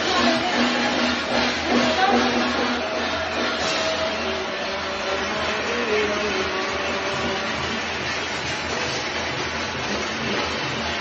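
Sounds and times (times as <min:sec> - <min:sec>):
crowd din: 0:00.0 - 0:11.0.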